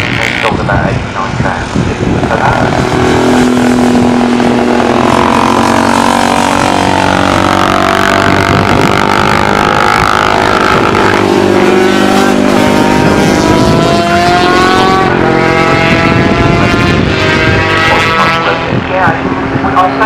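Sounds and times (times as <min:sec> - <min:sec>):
motorcycle engines accelerating past: 0:00.0 - 0:00.6, 0:01.8 - 0:20.0.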